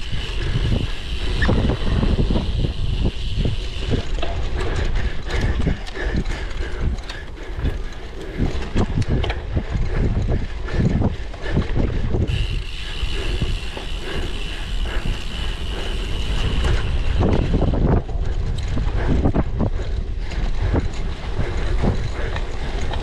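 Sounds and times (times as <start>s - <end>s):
bike rattling and clicking: 0.0s - 23.0s.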